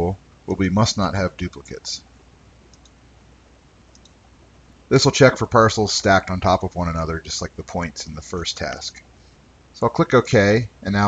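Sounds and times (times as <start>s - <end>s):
low background hiss: 0.0s - 11.0s
computer mouse clicks: 2.7s - 3.0s, 3.9s - 4.2s.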